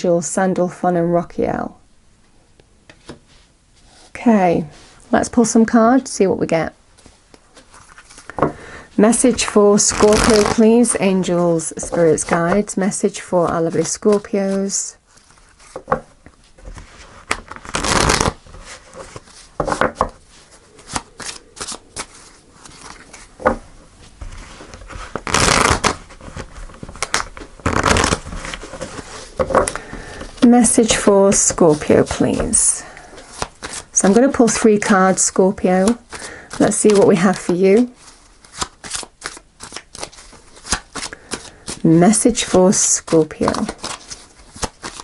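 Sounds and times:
cards rustling and tapping: 13.5s - 23.6s, 24.2s - 32.6s, 33.2s - 45.0s.

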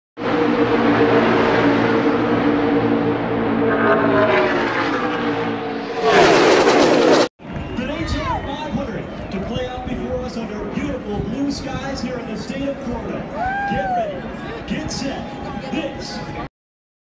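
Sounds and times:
race cars at racing speed: 0.2s - 16.5s.

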